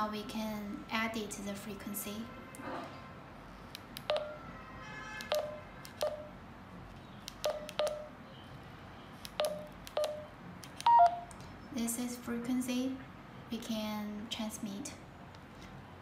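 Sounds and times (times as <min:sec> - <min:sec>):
short keypad beeps: 0:07.4 - 0:08.1, 0:09.4 - 0:11.3.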